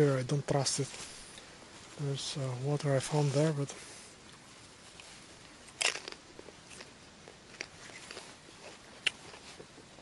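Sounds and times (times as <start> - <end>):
crunching crackle: 2.0 - 10.0.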